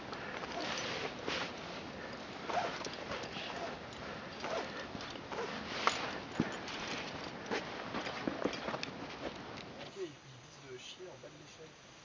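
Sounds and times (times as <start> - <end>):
hard irregular breathing: 0.0 - 8.3.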